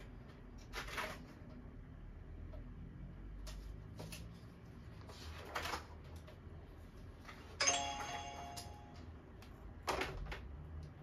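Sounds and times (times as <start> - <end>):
bell-like timer chime: 7.6 - 9.2.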